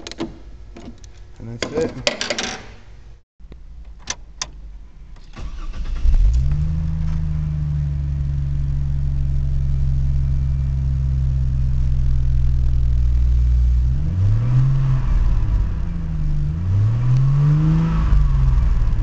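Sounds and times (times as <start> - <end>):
ignition clicks: 3.5 - 7.2
car engine starting and idling: 3.6 - 19.0.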